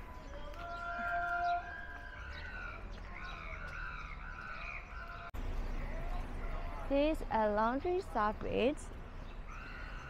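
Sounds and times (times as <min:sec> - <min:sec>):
street ambience: 0:00.0 - 0:10.0.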